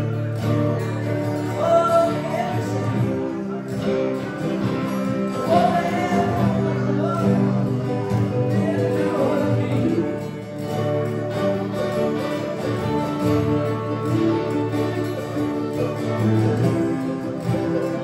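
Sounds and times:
person singing: 0.0 - 13.2
acoustic guitar: 0.0 - 18.0
electric guitar: 0.0 - 18.0
mandolin: 0.0 - 18.0.

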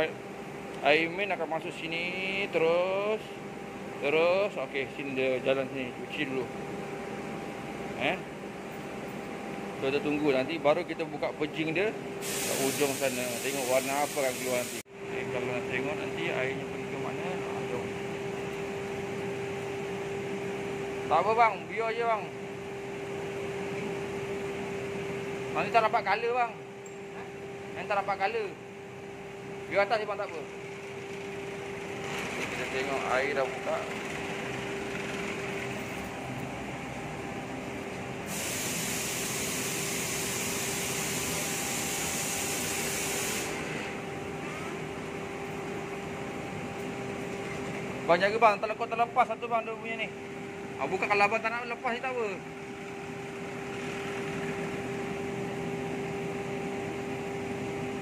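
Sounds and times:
machine hum: 0.0 - 58.0
even hiss: 12.2 - 14.8
hissing spray: 12.2 - 14.8, 38.3 - 43.6.

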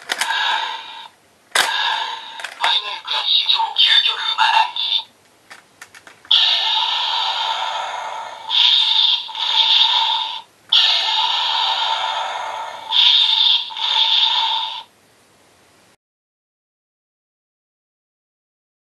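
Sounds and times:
toy sword energy-slash effect: 0.2 - 2.6, 6.3 - 14.8.

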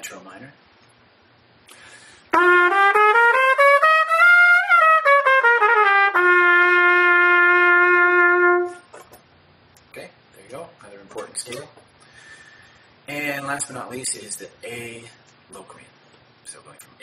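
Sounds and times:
trumpet playing a scale: 2.3 - 8.9.

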